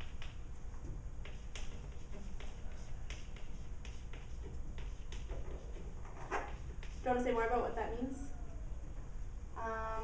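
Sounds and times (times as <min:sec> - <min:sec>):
low room rumble: 0:00.0 - 0:10.0
chalk scratching on chalkboard: 0:01.2 - 0:07.6.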